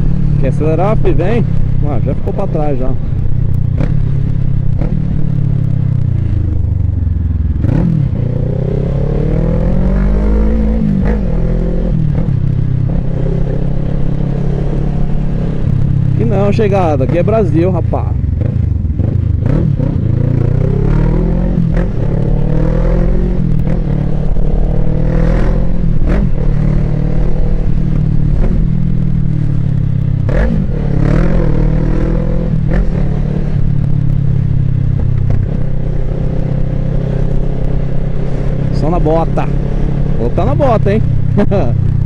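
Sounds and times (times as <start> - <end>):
motorcycle engine revving: 0.0 - 42.0.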